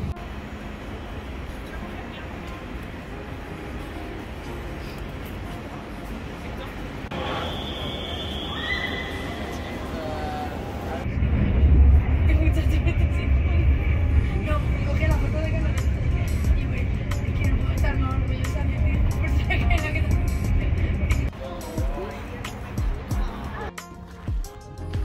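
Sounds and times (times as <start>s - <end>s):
station platform noise: 0.0s - 24.3s
voices: 1.0s - 23.9s
train running rumble: 9.6s - 23.5s.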